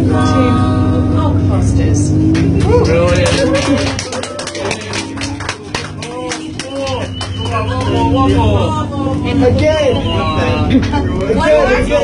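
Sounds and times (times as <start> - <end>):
person singing long note: 0.0 - 1.4
bus engine droning: 0.0 - 12.0
passengers' voices: 0.0 - 12.0.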